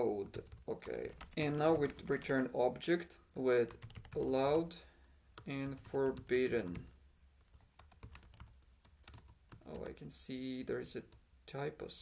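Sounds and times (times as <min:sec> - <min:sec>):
faint keyboard typing: 0:00.0 - 0:10.2.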